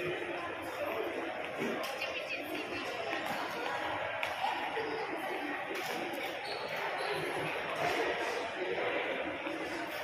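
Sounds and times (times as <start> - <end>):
indistinct voices echoing in hall: 0.0 - 10.0.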